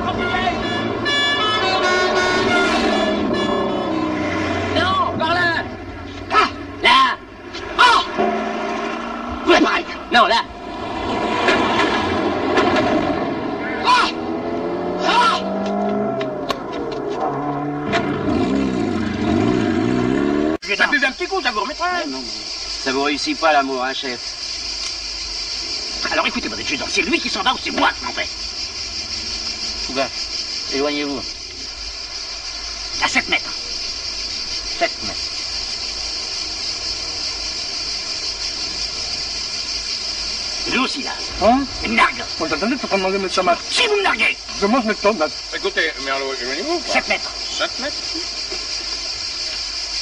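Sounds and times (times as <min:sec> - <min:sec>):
man shouting: 0:00.0 - 0:02.2, 0:06.3 - 0:08.2, 0:13.7 - 0:14.3, 0:15.0 - 0:15.6, 0:43.7 - 0:44.4
car horns honking: 0:00.0 - 0:10.7.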